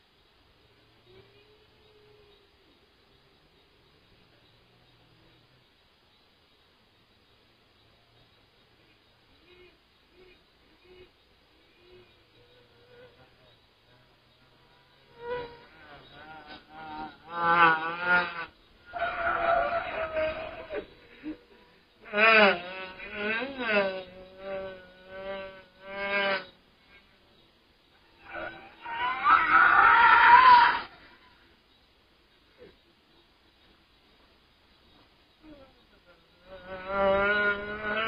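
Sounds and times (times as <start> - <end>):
voice-like wailing and moaning: 16.0 - 26.5, 28.2 - 31.4, 35.4 - 38.0.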